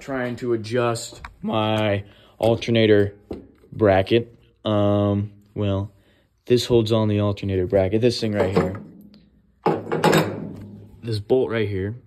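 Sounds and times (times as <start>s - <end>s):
metal part knock: 9.6s - 10.6s.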